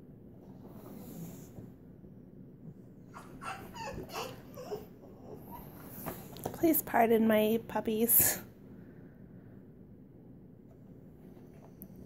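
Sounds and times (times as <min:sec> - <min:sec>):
puppies whimpering and yipping: 0:03.1 - 0:05.9.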